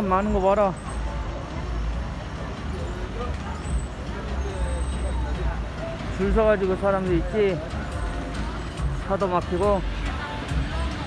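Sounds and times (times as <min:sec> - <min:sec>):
cars passing slowly: 0:00.0 - 0:11.0
faint crowd chatter: 0:00.0 - 0:11.0.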